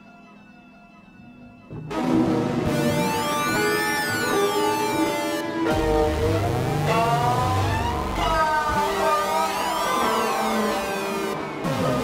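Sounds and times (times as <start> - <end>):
deep electronic bass tone: 5.7 - 8.8.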